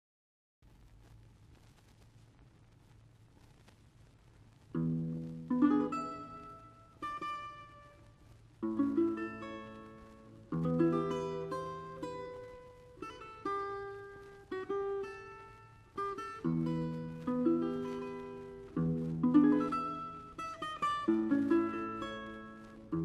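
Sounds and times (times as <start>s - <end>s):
guitar plucked chords: 4.7s - 23.0s.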